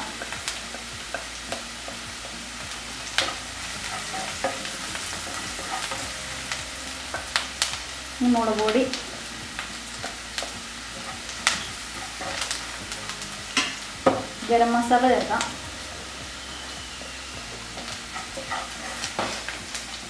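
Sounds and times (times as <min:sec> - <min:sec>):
onion sizzling in oil: 0:00.0 - 0:20.0
spatula clicking and scraping pan: 0:00.1 - 0:07.8, 0:08.6 - 0:14.4, 0:17.7 - 0:20.0.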